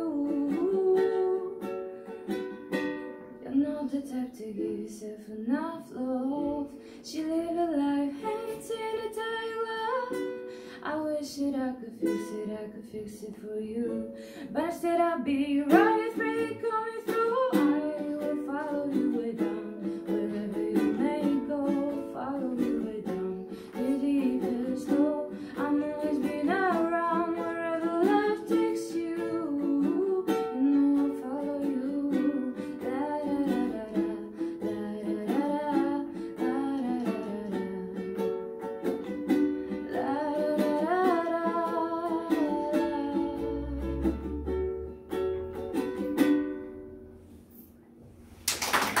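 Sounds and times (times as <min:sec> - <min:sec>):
woman singing: 0:00.0 - 0:01.7, 0:03.4 - 0:38.2, 0:39.7 - 0:44.1
ukulele strummed and picked: 0:00.0 - 0:48.4.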